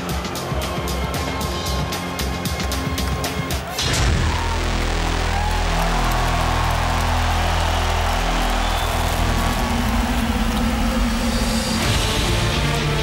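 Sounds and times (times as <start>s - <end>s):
crowd noise in arena: 0.0s - 13.0s
deep bass drone over speakers: 3.9s - 13.0s.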